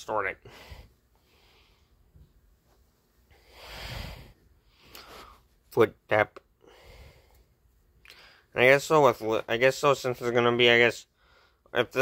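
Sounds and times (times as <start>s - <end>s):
person exhaling: 3.4s - 5.4s.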